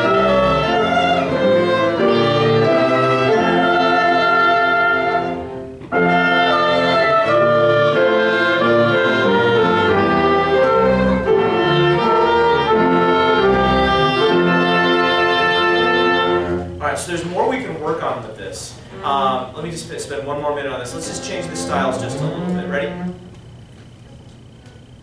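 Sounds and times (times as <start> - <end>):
strings and winds playing chords: 0.0 - 17.7, 18.8 - 23.4
people talking: 16.8 - 23.1.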